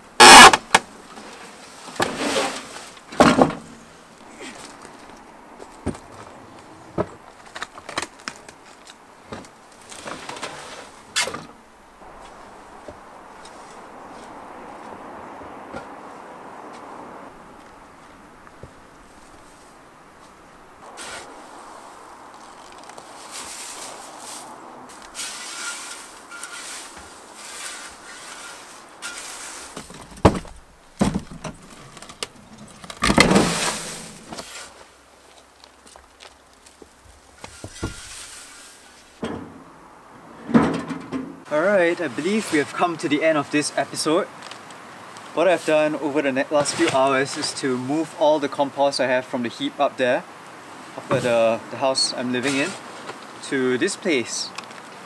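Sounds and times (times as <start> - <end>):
shovel scraping wet wood shavings: 1.2 - 3.0, 9.9 - 11.3, 20.8 - 29.8, 33.3 - 34.9, 37.6 - 39.1, 41.7 - 44.1, 45.4 - 48.0, 52.4 - 53.0
knocks and a thump: 3.1 - 3.8, 5.8 - 8.1, 29.7 - 34.5, 39.2 - 39.8, 40.4 - 41.5
shavings crunching: 20.8 - 29.8
plastic bag rustling: 20.8 - 30.1.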